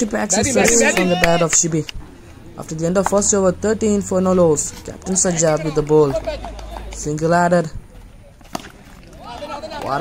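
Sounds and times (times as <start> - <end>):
commentator talking: 0.0 - 2.0, 2.6 - 7.8.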